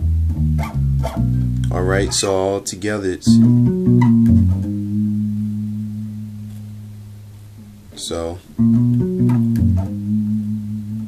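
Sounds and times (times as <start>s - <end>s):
electric bass guitar lick: 0.0s - 11.0s.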